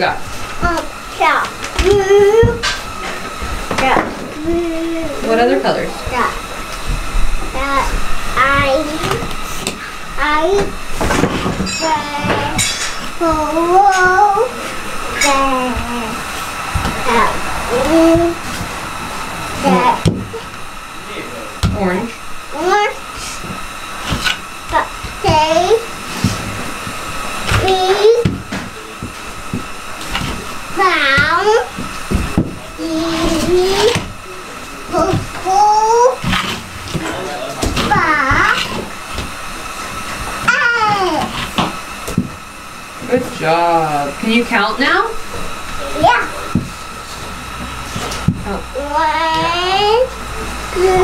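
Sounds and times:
steady whirring hum: 0.0 - 51.0
child speaking: 0.6 - 2.7, 3.7 - 5.4, 6.0 - 6.4, 7.4 - 9.3, 10.2 - 10.8, 11.5 - 14.6, 15.2 - 16.2, 16.8 - 18.6, 19.6 - 20.4, 21.6 - 23.1, 24.7 - 25.9, 27.5 - 28.4, 30.8 - 31.7, 32.8 - 34.1, 34.9 - 36.3, 37.6 - 38.8, 40.4 - 41.4, 45.8 - 46.6, 48.5 - 51.0.

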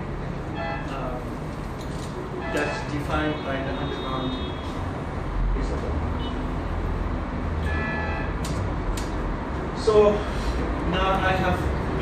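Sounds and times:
sharp clicks: 8.4 - 9.2.

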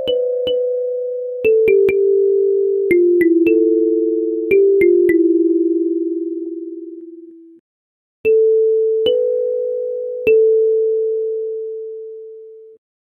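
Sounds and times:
kalimba notes: 0.0 - 7.2, 8.3 - 10.8.

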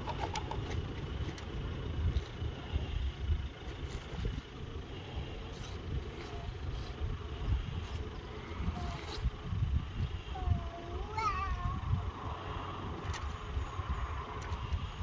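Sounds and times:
wind buffeting microphone: 5.4 - 15.0.

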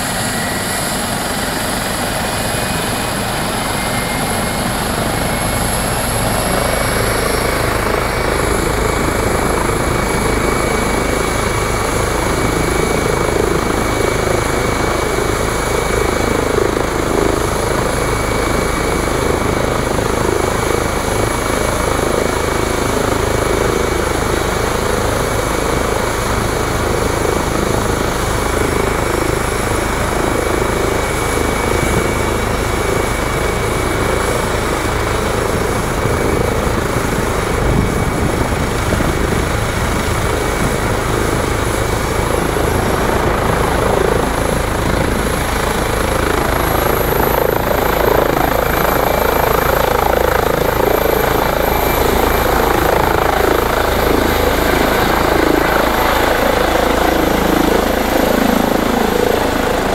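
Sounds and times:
helicopter rotor turning: 0.0 - 59.9
high turbine whine: 0.0 - 59.9.

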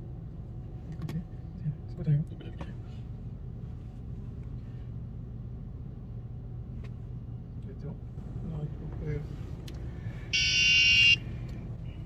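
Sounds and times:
electronic buzzer beep: 10.4 - 11.2.

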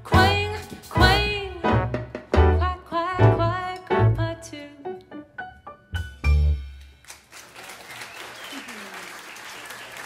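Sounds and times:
plucked upright bass: 0.0 - 4.4, 6.0 - 6.7
woman singing jazz: 0.0 - 5.2.

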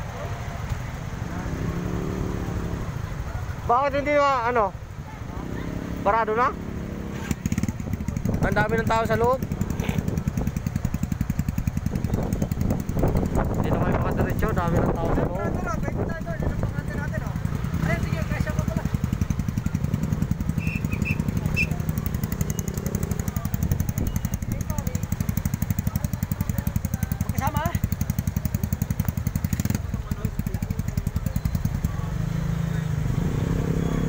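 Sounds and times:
motorcycle engine idling: 2.5 - 33.0.

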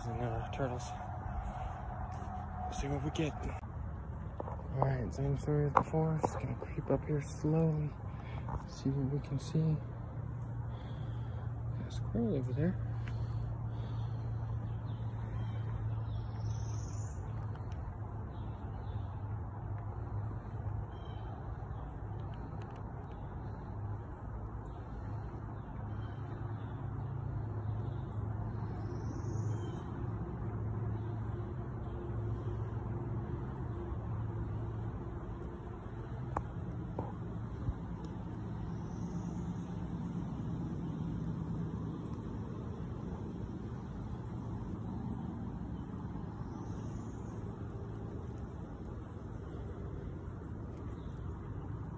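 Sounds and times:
steady low rumble: 0.0 - 51.9
faint clicks: 22.1 - 23.6.

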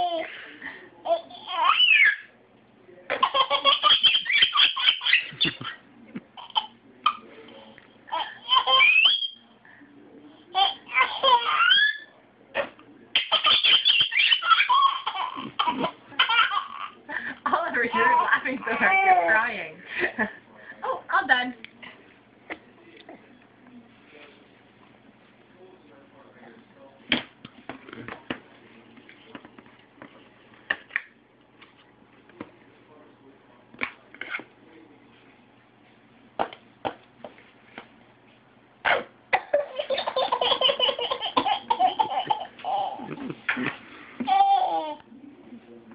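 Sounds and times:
baby laughing: 0.0 - 0.4, 1.0 - 2.3, 3.1 - 5.8, 6.4 - 7.2, 8.1 - 9.4, 10.5 - 12.1, 13.1 - 17.1, 39.4 - 45.0.

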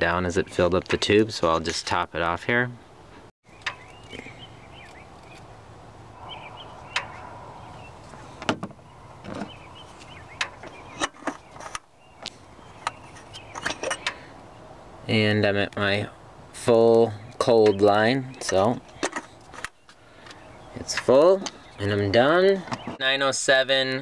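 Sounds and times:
faint steady background noise: 0.0 - 24.0.

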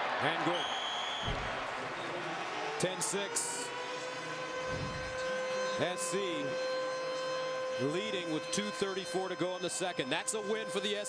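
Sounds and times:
stadium crowd noise: 0.0 - 6.7, 7.7 - 11.0.

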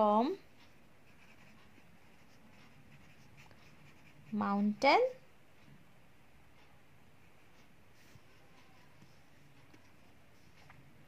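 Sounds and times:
pen scratching on paper: 1.0 - 4.8.

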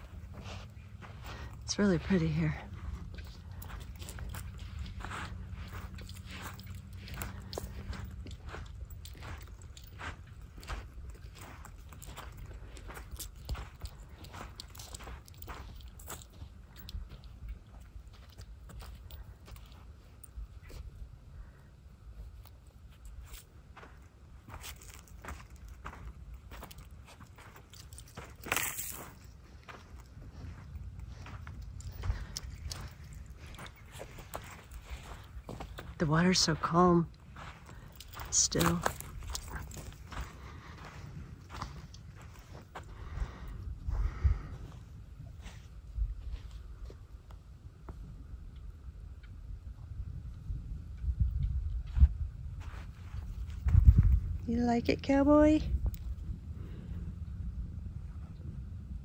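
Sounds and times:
footsteps crunching on sand and pebbles: 0.0 - 21.0, 22.1 - 47.2, 51.8 - 57.0
steady low rumble: 0.0 - 59.0.

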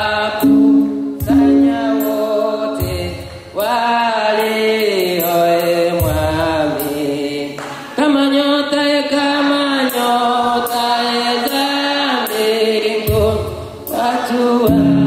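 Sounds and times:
slow church singing: 0.0 - 15.0.

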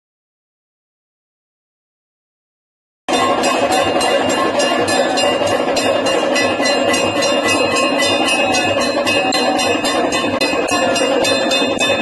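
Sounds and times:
ringing shimmer over din: 3.1 - 12.0
temple bells clanging: 3.1 - 12.0.

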